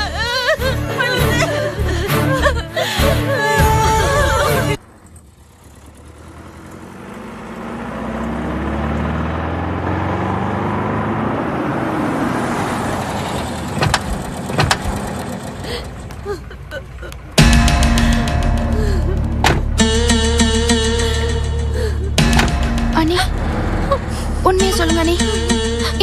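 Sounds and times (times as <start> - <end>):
car engine and tyre noise: 0.0 - 26.0
car door clunks: 13.6 - 15.5, 19.2 - 19.9, 22.2 - 22.9.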